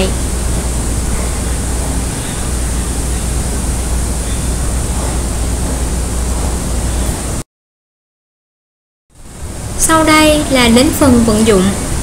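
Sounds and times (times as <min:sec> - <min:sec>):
loud steady hiss: 0:00.0 - 0:07.4, 0:09.2 - 0:12.0
low hum: 0:00.0 - 0:07.4.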